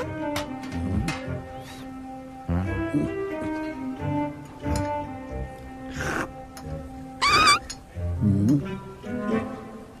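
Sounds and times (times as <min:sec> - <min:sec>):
film music: 0:00.0 - 0:10.0
high wavering squeal: 0:07.2 - 0:07.7.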